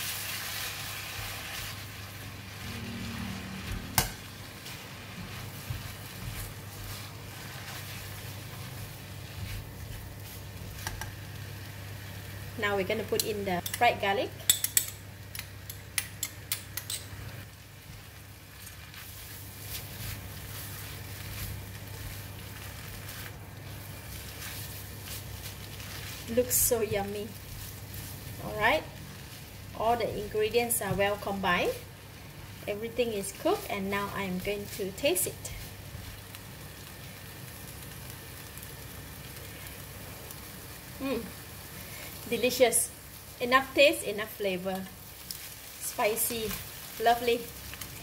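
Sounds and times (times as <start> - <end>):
noodles sizzling in a wok: 0.0 - 48.0.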